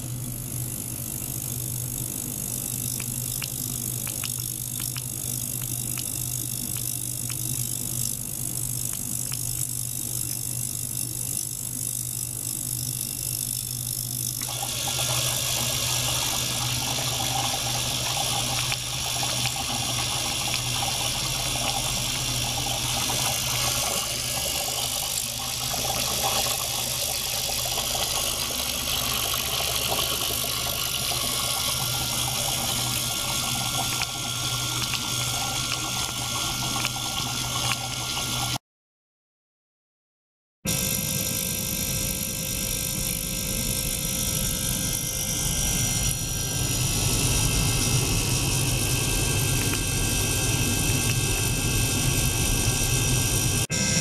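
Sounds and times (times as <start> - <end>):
low mechanical hum: 0.0 - 38.6, 40.7 - 54.0
ultrasonic cleaner hissing and crackling: 2.3 - 10.0, 14.4 - 38.6, 43.6 - 53.9.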